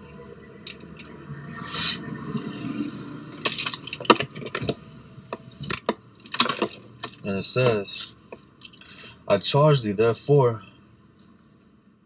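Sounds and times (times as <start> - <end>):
clinks: 3.2 - 7.2.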